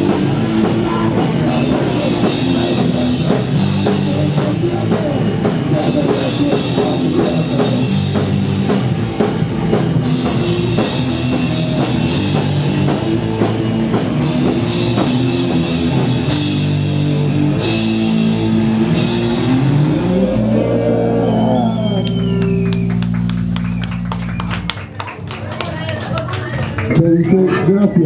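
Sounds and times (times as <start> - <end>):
live rock band playing: 0.0 - 25.1.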